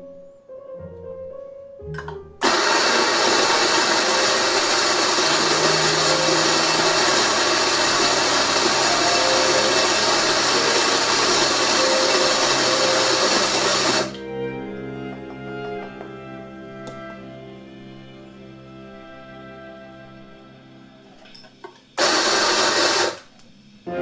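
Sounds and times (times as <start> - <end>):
electric coffee grinder running: 2.4 - 14.2, 22.0 - 23.4.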